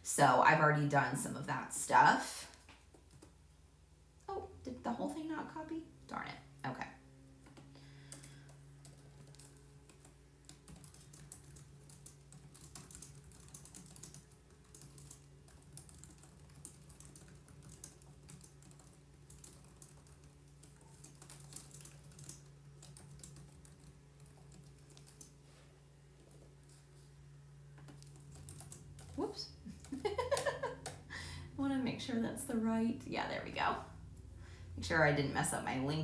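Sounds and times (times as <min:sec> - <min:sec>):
steady low hum: 0:00.0 - 0:36.0.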